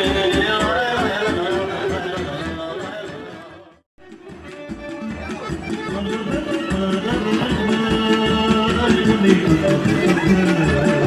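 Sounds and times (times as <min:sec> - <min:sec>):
folk dance music: 0:00.0 - 0:11.0.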